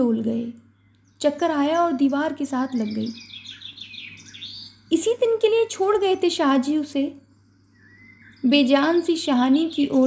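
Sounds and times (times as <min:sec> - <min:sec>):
faint steady hum: 0:00.0 - 0:10.0
small birds chirping: 0:00.0 - 0:10.0.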